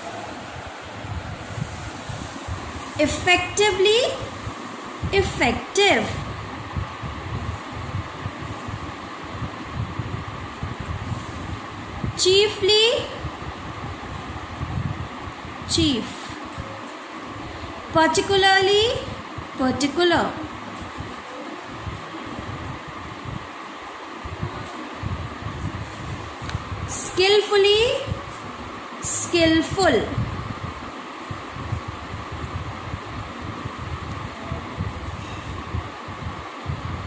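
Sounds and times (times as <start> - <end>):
electric fan running: 0.0 - 37.0.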